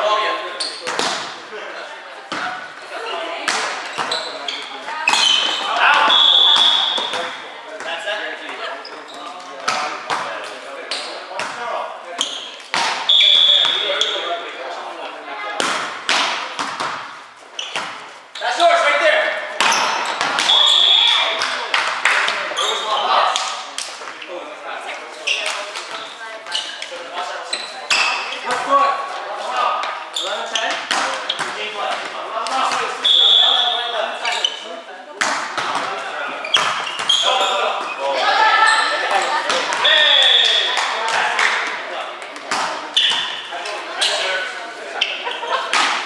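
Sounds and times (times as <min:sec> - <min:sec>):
players' voices: 0:00.0 - 0:46.0
ball slaps: 0:03.4 - 0:04.1, 0:15.6 - 0:17.1, 0:36.6 - 0:37.1.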